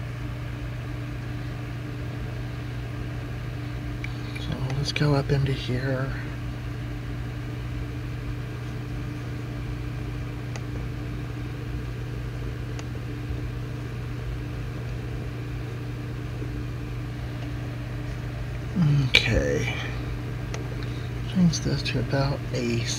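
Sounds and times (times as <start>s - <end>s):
low machine hum: 0.0s - 22.9s.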